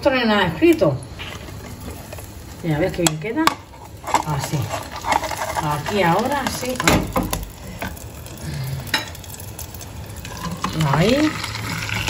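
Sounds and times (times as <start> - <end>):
egg frying in oil: 0.0 - 12.0.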